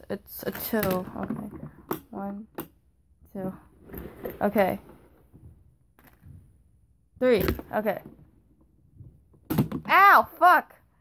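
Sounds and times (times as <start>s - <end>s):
plastic hand thunk: 9.0s - 9.9s.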